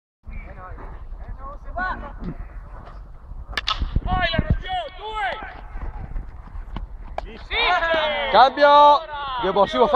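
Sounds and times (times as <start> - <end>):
bat hitting ball crack: 3.5 - 4.0
players shouting: 4.2 - 5.9, 7.3 - 9.9.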